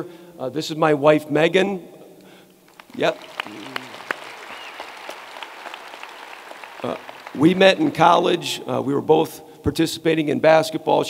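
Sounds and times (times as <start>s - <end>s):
light applause: 2.7s - 8.5s.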